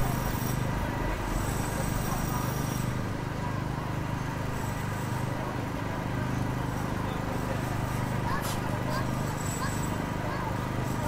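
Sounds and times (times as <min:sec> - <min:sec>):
city street noise: 0:00.0 - 0:11.0
heavy engine rumbling: 0:00.0 - 0:11.0.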